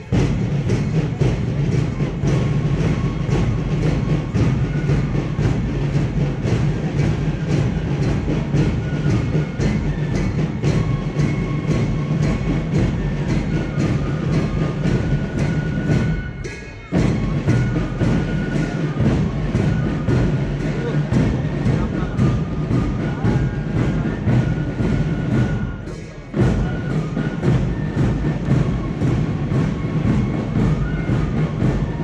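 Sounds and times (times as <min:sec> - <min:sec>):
marching drums: 0:00.0 - 0:32.0.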